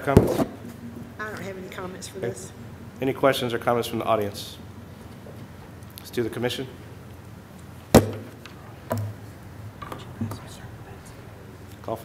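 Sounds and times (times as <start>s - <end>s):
sharp thump: 8.0s - 8.3s.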